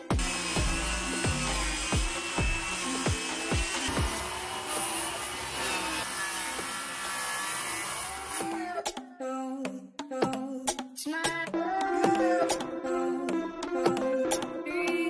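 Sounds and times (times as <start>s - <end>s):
background music with beat: 0.0s - 4.0s, 8.6s - 15.0s
circular saw cutting plywood: 0.0s - 8.7s.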